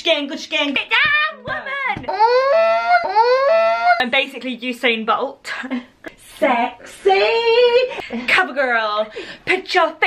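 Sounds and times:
woman's high rising cries: 0:02.1 - 0:04.0.

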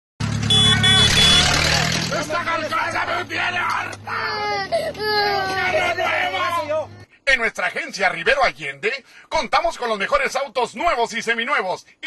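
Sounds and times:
vehicle engine running: 0:00.2 - 0:07.1
short high beeps: 0:00.5 - 0:01.6.

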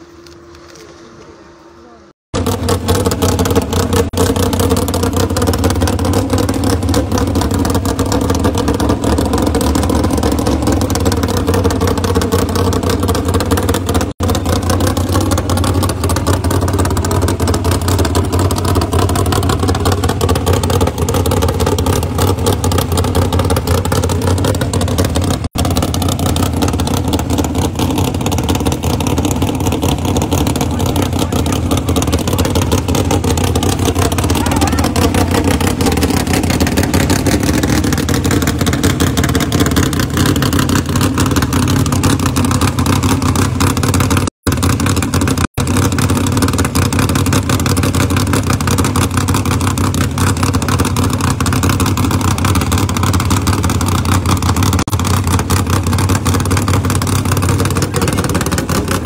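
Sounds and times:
car engine idling loudly: 0:00.0 - 0:59.0.

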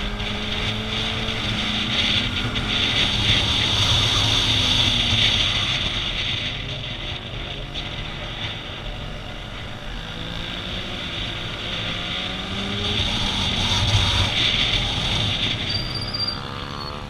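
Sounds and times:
wind rushing over microphone: 0:00.0 - 0:15.9
motorcycle engine at speed: 0:00.0 - 0:17.0.

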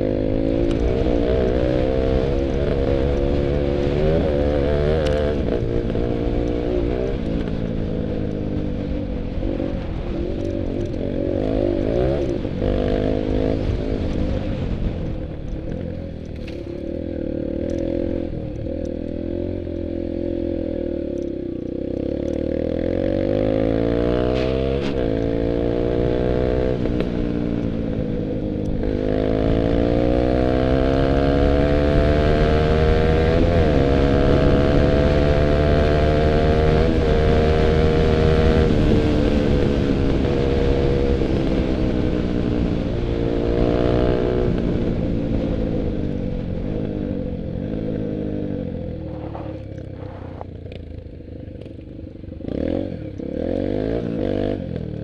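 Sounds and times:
dirt bike engine revving: 0:00.0 - 0:08.1, 0:16.4 - 0:27.1, 0:28.7 - 0:45.4, 0:52.4 - 0:54.8.

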